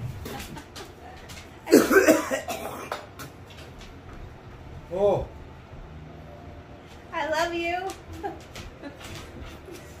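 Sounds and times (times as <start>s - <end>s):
man coughing hard: 1.7s - 3.1s.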